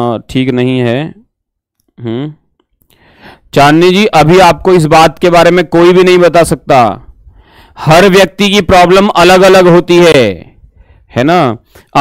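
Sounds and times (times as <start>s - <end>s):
man speaking: 0.0s - 1.3s, 3.5s - 7.1s, 7.8s - 10.5s, 11.2s - 12.0s.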